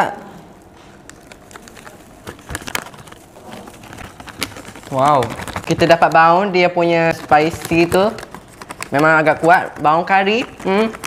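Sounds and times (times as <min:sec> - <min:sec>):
snack packet crinkling: 0:00.9 - 0:11.0.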